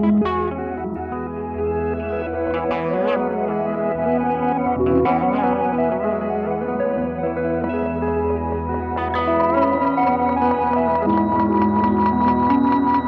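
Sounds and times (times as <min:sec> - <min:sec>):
electric guitars with echo: 0:00.0 - 0:13.0.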